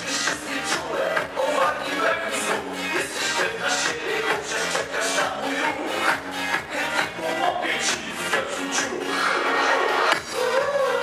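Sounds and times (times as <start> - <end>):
dance music played by live band: 0.0 - 11.0.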